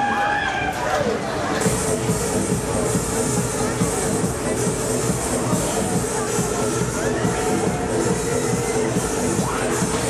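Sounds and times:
fairground music: 0:00.0 - 0:10.0
ride machinery rumble and hum: 0:00.7 - 0:10.0.

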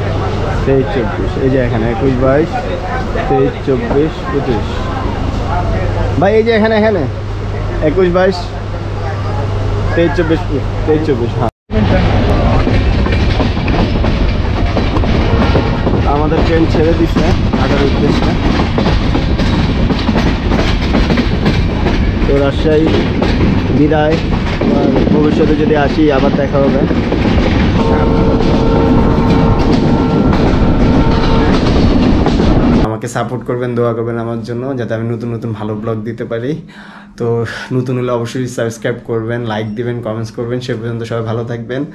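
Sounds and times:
train clatter: 0:00.0 - 0:06.9, 0:11.7 - 0:35.2
train wheels rumbling on rails: 0:00.0 - 0:36.7
steady high tone: 0:27.7 - 0:32.0.

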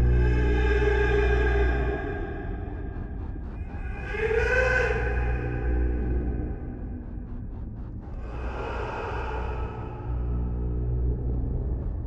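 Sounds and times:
eerie low rumbling drone: 0:00.0 - 0:12.0.

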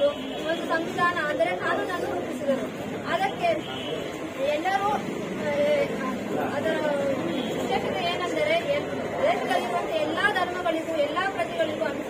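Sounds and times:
woman speaking: 0:00.0 - 0:03.7, 0:04.4 - 0:12.0
people chattering: 0:00.0 - 0:12.0.

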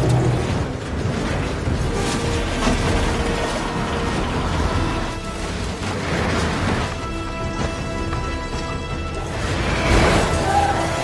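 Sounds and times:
debris clattering: 0:00.0 - 0:11.0
deep rumble: 0:00.0 - 0:11.0
rushing tornado wind: 0:00.0 - 0:11.0.

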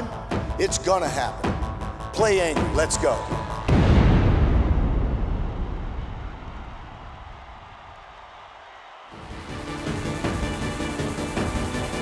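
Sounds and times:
deep cinematic boom: 0:03.6 - 0:06.7
electronic music: 0:09.2 - 0:12.0.

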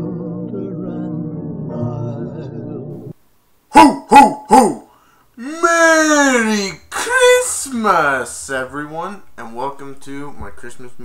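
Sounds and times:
man making loud vocal calls: 0:03.7 - 0:07.7.

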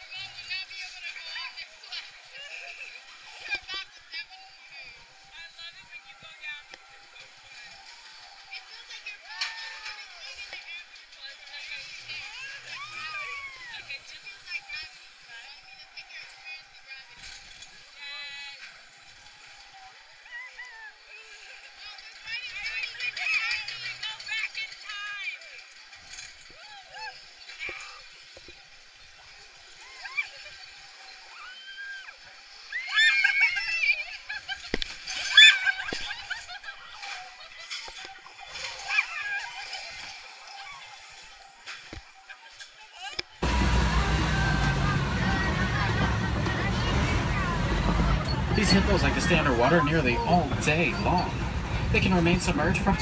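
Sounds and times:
riders laughing and shouting: 0:11.7 - 0:17.2, 0:29.8 - 0:41.4, 0:43.4 - 0:53.0
rider squealing: 0:29.8 - 0:41.2, 0:43.4 - 0:53.0.

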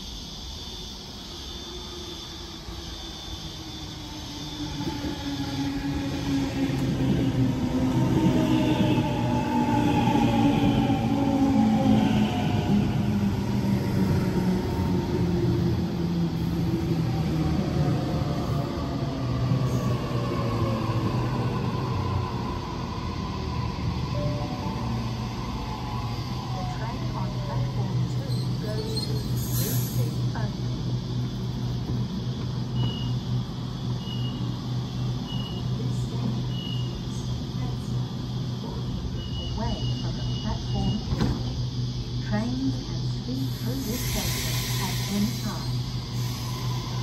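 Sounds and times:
train braking whine: 0:00.0 - 0:47.0
train rumble: 0:00.0 - 0:47.0.

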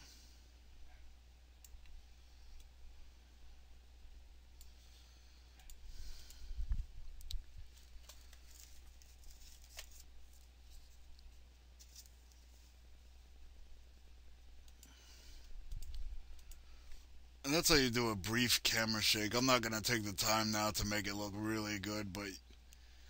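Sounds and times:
steady low hum: 0:00.0 - 0:23.0
faint computer mouse clicks: 0:15.7 - 0:16.6.

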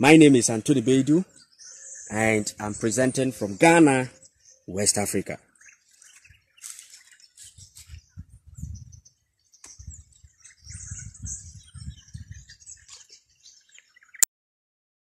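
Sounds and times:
small birds chirping: 0:00.0 - 0:14.3.

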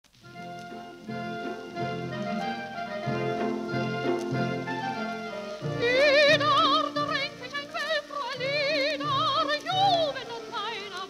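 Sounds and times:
orchestral music: 0:00.1 - 0:11.0
high melody with wide vibrato: 0:00.2 - 0:11.0.

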